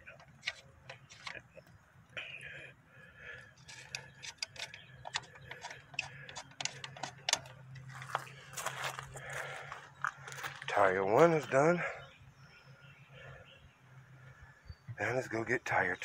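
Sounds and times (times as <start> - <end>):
lug nuts clicking on studs: 0.0 - 1.4, 3.6 - 8.3.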